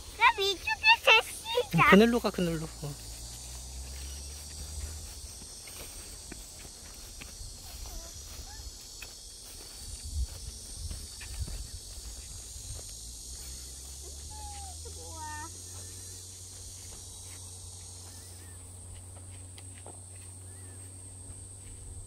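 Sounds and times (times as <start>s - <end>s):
footsteps on grass and dirt: 0.0s - 22.0s
high insect buzz: 0.0s - 22.0s.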